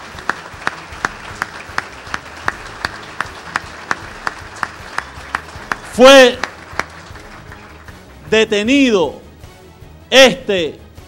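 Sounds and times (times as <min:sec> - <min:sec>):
audience clapping in unison: 0:00.0 - 0:09.0
loose applause: 0:00.0 - 0:09.0.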